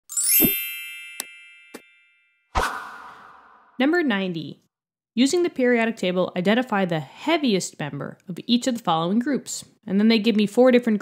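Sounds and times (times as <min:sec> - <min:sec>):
bright ringing chime: 0:00.1 - 0:02.5.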